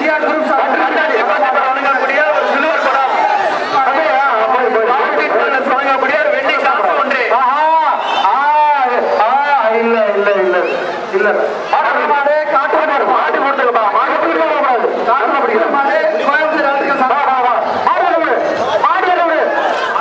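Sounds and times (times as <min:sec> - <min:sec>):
man commentating loudly: 0:00.0 - 0:20.0.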